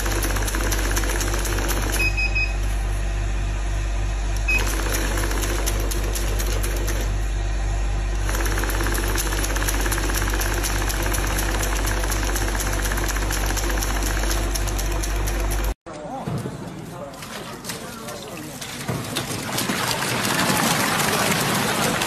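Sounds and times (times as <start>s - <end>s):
banknote counting machine: 0.0s - 2.6s, 4.5s - 7.2s, 8.2s - 15.8s.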